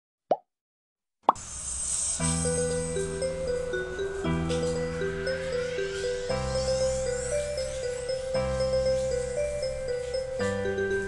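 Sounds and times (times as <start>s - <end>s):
background music: 2.2s - 11.0s.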